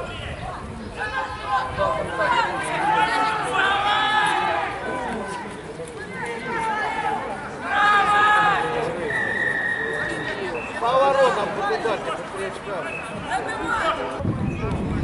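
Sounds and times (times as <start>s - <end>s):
people shouting calls: 0.0s - 11.9s.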